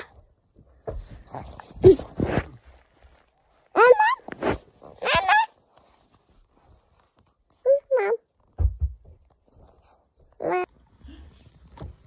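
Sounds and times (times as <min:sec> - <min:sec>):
baby squealing and babbling: 0:03.7 - 0:04.3, 0:05.0 - 0:05.6, 0:10.4 - 0:10.7.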